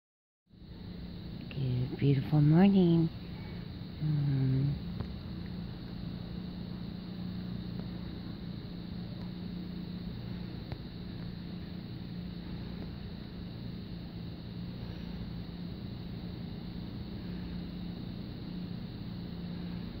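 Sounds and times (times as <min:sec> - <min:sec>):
low engine hum: 0:00.6 - 0:20.0.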